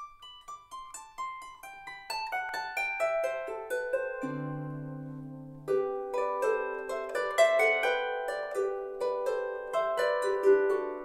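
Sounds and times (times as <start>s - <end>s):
harps playing a jig: 0.0s - 11.0s.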